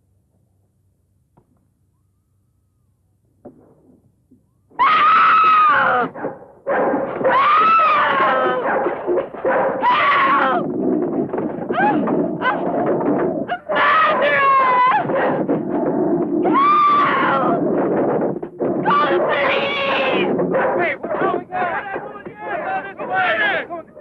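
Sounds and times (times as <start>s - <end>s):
woman screaming: 13.5s - 15.1s.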